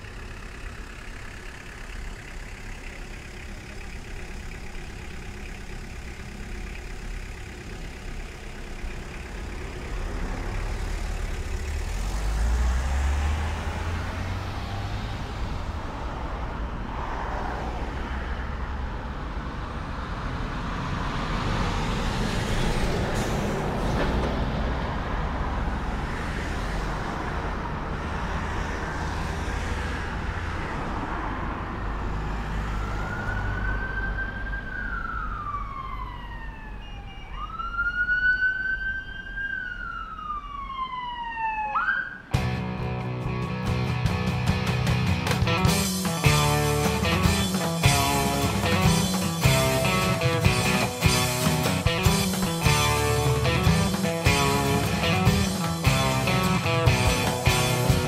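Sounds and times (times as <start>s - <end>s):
car engine rumble: 0.0s - 36.7s, 42.3s - 58.0s
road noise: 0.0s - 58.0s
emergency vehicle siren wailing: 32.1s - 42.4s, 46.5s - 58.0s.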